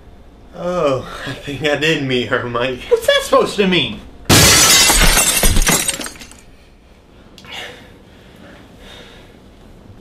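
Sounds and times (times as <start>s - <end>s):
window glass shattering: 4.3s - 6.4s.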